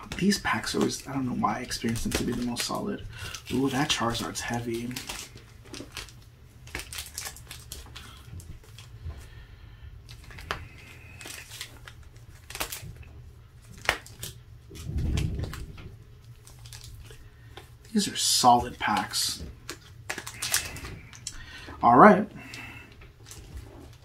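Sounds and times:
plastic wrappers crinkling: 0:00.0 - 0:09.4, 0:10.0 - 0:24.0.

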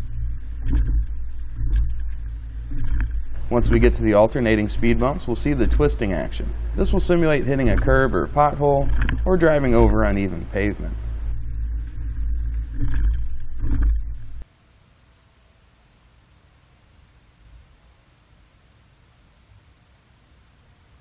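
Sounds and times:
low rumble of vehicle and road: 0:00.0 - 0:14.5.

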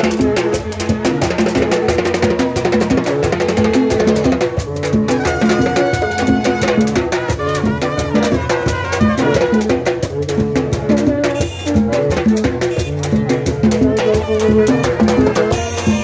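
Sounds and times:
drums and percussion beat: 0:00.0 - 0:16.0
brass horns repeating riff: 0:05.1 - 0:13.2, 0:13.8 - 0:16.0.

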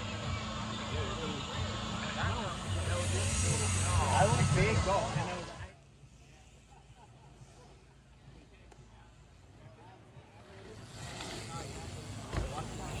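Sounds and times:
chatter of voices: 0:00.0 - 0:13.0
rushing noise: 0:02.3 - 0:05.7.

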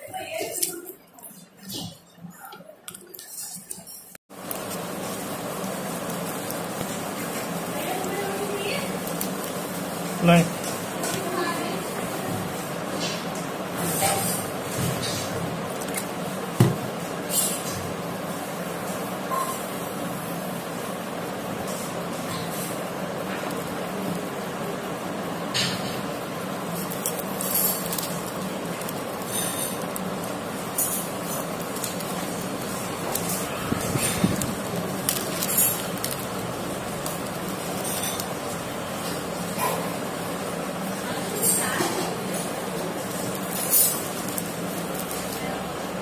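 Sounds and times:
background hum and hiss: 0:00.0 - 0:46.0
paper napkin rustling: 0:02.9 - 0:12.7, 0:26.5 - 0:40.4
plastic container crinkle: 0:26.7 - 0:39.2, 0:43.0 - 0:45.6.

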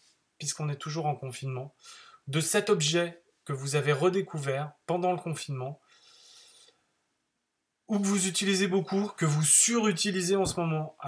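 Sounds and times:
man speaking: 0:00.4 - 0:05.8, 0:07.9 - 0:11.0
faint hissing rasp: 0:05.8 - 0:06.8.

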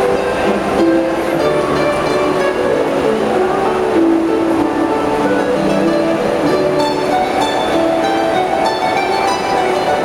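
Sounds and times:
harp duet: 0:00.0 - 0:10.0.

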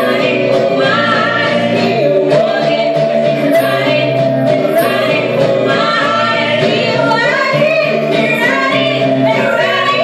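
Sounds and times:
strummed acoustic guitar: 0:00.0 - 0:10.0
woman singing: 0:00.0 - 0:10.0.

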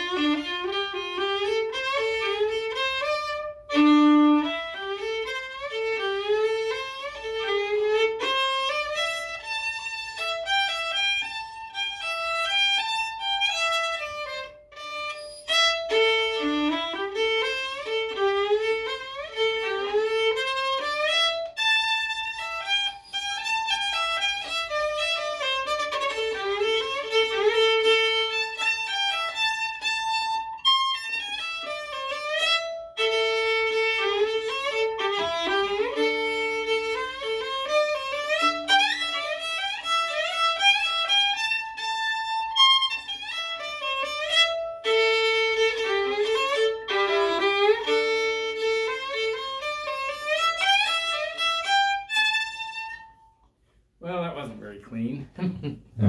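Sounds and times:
solo fiddle playing lively tune: 0:00.0 - 0:53.4.

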